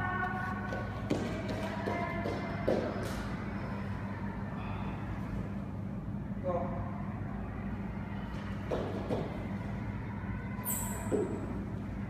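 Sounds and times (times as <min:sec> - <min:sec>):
faint music: 0:00.0 - 0:12.0
steady low hum: 0:00.0 - 0:12.0.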